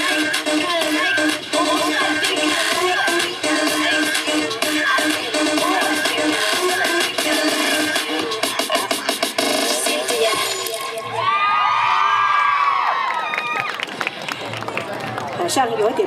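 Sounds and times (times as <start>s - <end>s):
electronic dance music: 0.0s - 11.2s
audience cheering and screaming: 11.0s - 14.0s.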